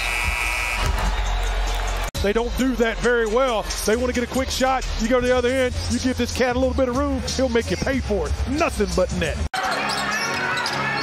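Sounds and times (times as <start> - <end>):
crowd cheering: 0.0 - 2.1.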